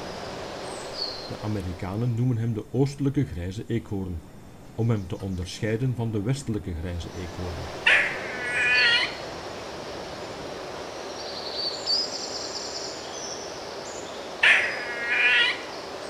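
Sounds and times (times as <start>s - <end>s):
steady background noise: 0.0s - 16.0s
harsh bird call: 7.1s - 9.2s, 14.3s - 16.0s.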